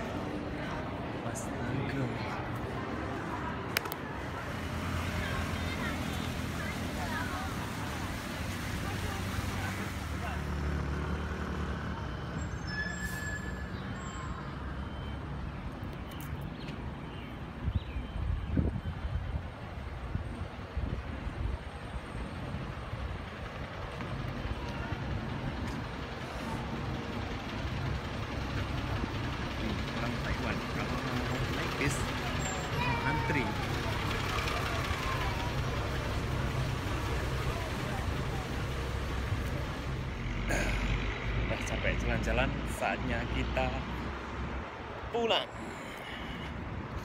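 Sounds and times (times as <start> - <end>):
people talking: 0.0 - 10.6, 29.6 - 40.8
bus engine rumbling: 0.0 - 47.0
street traffic: 0.0 - 47.0.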